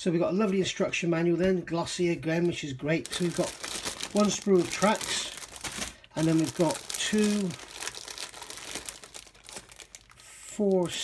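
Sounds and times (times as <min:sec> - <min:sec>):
plastic bags crinkling: 0:02.3 - 0:11.0.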